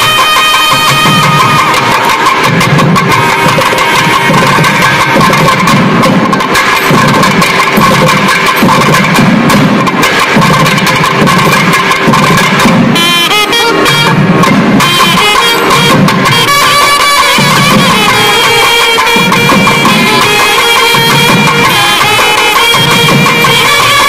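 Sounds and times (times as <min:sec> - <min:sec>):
double-reed shawms playing melody: 0:00.0 - 0:09.1, 0:11.5 - 0:24.0
drums beating rhythm: 0:00.0 - 0:24.0.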